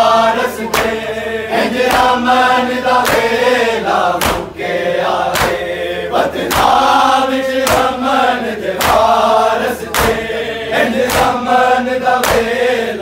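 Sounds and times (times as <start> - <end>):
men chanting together: 0.0 - 13.0
hands slapping chests in unison: 0.6 - 1.1, 1.7 - 4.7, 5.3 - 12.9.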